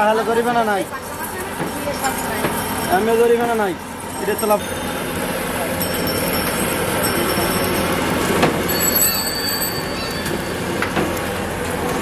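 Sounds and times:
thin high squeal: 8.7 - 10.8.

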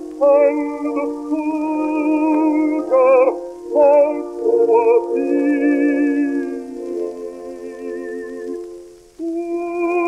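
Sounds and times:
baritone singing with orchestra: 0.0 - 10.0.

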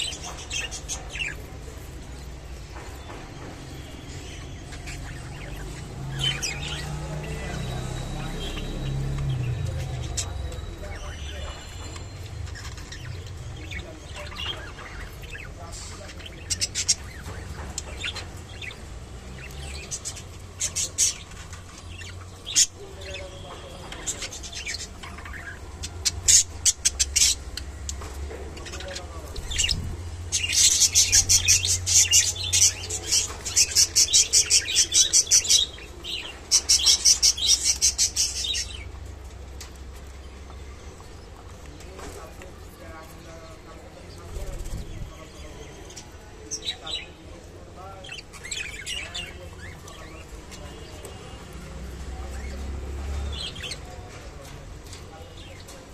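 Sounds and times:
budgerigars chirping: 3.9 - 18.8, 19.4 - 39.1.

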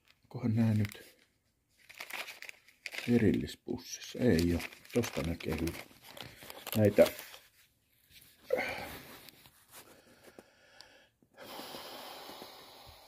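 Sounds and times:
man wheezing breath: 8.4 - 9.2.

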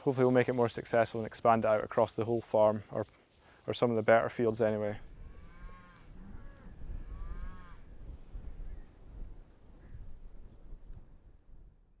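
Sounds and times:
wind on microphone: 5.0 - 12.0
faint cow mooing: 5.2 - 7.9.

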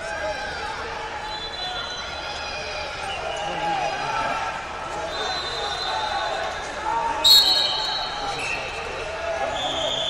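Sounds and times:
hubbub of many voices: 0.0 - 10.0
referee's whistle blast: 7.2 - 8.8.

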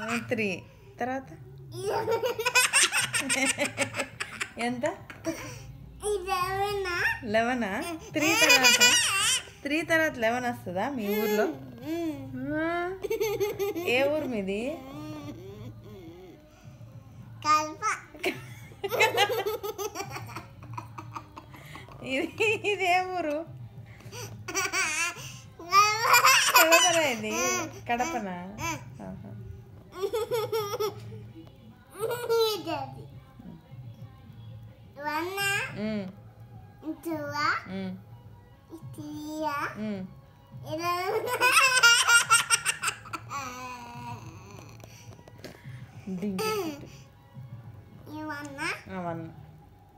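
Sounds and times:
girl laughing: 18.2 - 21.6.

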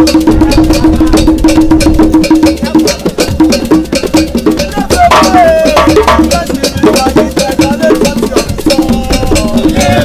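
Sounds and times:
fast percussion beat: 0.0 - 10.0.

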